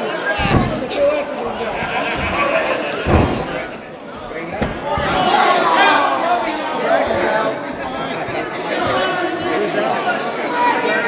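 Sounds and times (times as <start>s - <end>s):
crowd shouting and chattering: 0.0s - 11.0s
wrestler body thud: 0.4s - 5.6s.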